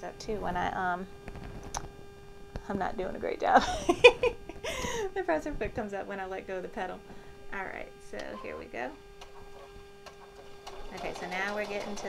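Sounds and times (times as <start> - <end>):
sewing machine motor hum: 8.2 - 12.0.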